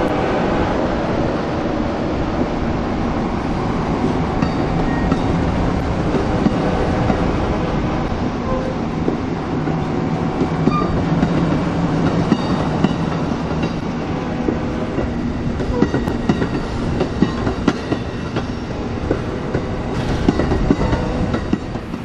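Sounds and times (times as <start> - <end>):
train wheels rumbling on rail: 0.0 - 22.0.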